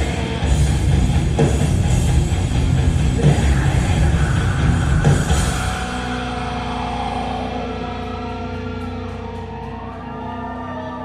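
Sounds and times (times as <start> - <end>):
electric guitars and bass chord: 0.0 - 11.0.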